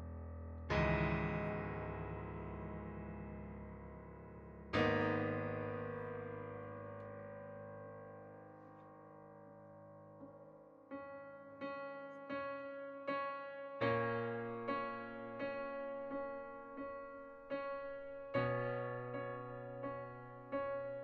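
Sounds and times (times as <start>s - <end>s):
piano music: 0.0s - 21.0s.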